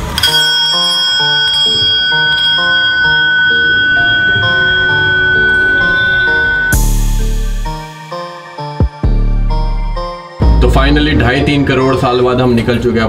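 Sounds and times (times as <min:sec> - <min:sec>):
background music with melody: 0:00.0 - 0:13.0
metal bell ringing: 0:00.2 - 0:07.1.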